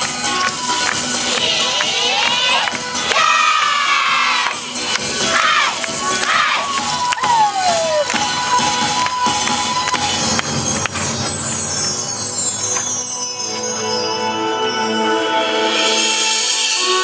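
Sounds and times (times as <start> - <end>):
loud dance music: 0.0 - 11.3
dancers shouting calls: 1.3 - 4.6, 5.2 - 8.1.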